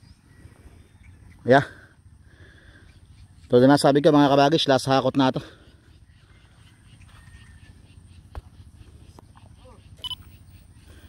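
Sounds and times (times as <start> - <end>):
faint chirps: 5.4 - 11.0.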